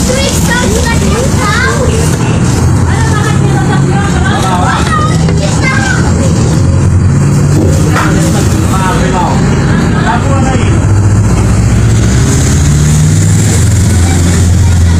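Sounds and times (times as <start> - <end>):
people talking indistinctly: 0.0 - 12.0
vehicle engine running: 0.0 - 14.9.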